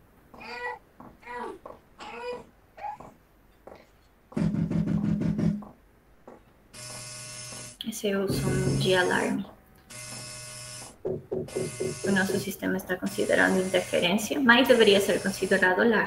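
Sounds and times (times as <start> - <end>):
steady alarm tone: 6.7 - 15.8
loud buzzing burst: 6.8 - 9.3, 9.9 - 15.6
wavering pitched cries: 11.1 - 15.7.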